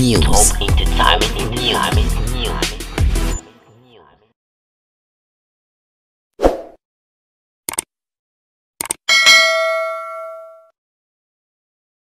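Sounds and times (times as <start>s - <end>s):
notification bell ding: 9.1s - 10.7s.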